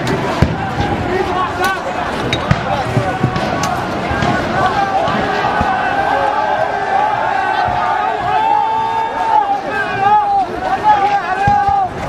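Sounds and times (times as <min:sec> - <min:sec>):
crowd shouting: 0:00.0 - 0:12.0.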